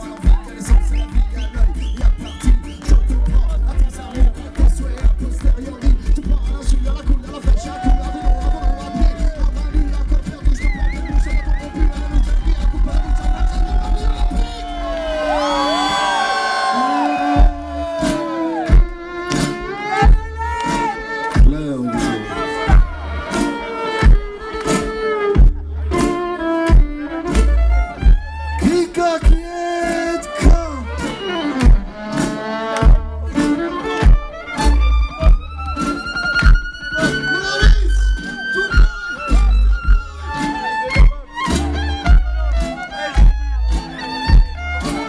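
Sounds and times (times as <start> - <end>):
punchy drum beat: 0.0 - 16.1, 16.8 - 45.0
deep bass line: 0.0 - 45.0
live band music: 0.0 - 45.0
crowd whooping: 6.1 - 19.1, 21.9 - 24.0, 30.7 - 31.7, 34.7 - 40.7
violin melody: 17.6 - 45.0.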